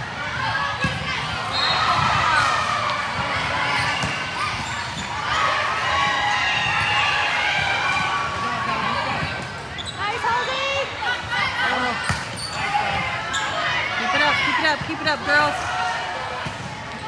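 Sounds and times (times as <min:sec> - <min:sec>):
sneakers squeaking: 0:00.8 - 0:05.4, 0:09.1 - 0:10.8, 0:11.7 - 0:15.1.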